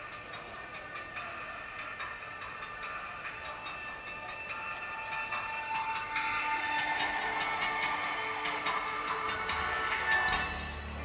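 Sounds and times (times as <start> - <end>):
distant live band music: 0.0 - 11.0.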